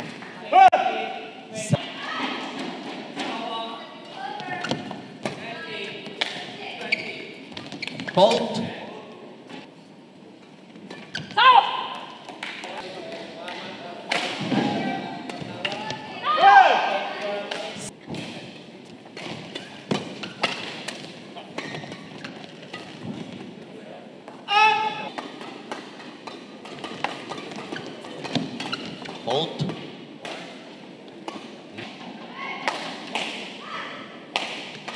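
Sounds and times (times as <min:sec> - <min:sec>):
players shouting: 0:15.7 - 0:17.4, 0:24.5 - 0:25.1
racket striking shuttlecock: 0:34.3 - 0:34.9.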